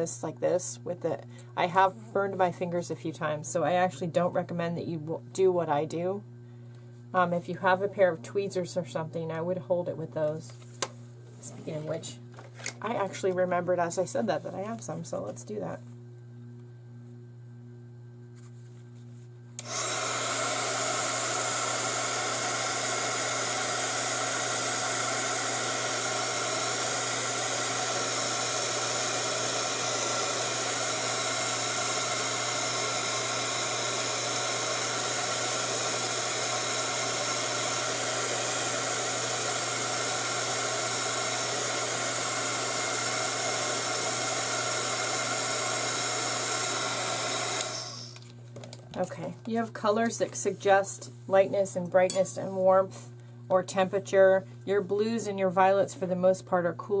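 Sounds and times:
heat gun blowing: 0:19.6 - 0:48.2.

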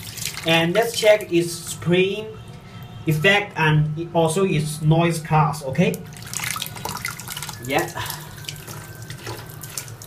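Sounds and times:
water splashing onto tiled wall: 0:00.0 - 0:01.3, 0:05.9 - 0:10.0.

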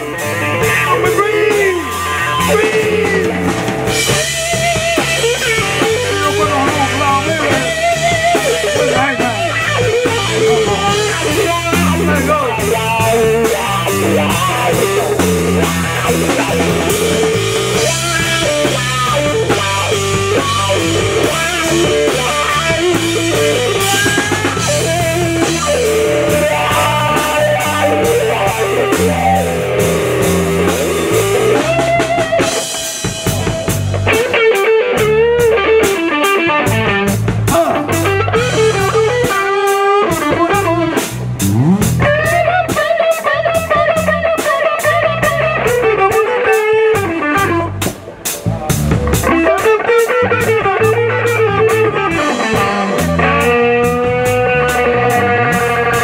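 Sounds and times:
electric guitar solo bent notes: 0:00.0 - 0:56.0
live blues-rock band playing: 0:00.0 - 0:56.0.

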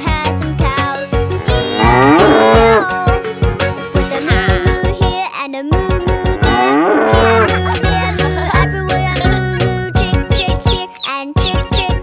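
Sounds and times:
children's song music: 0:00.0 - 0:12.0
cow mooing: 0:01.4 - 0:02.8, 0:06.4 - 0:07.6.

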